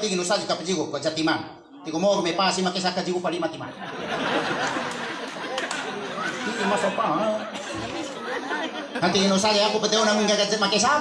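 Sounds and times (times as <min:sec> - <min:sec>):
murmur of chatter: 0:01.4 - 0:11.0.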